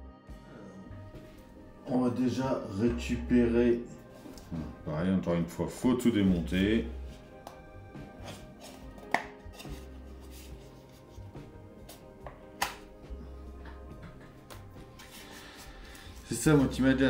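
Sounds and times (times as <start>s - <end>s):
background music with bass line: 0.0s - 17.0s.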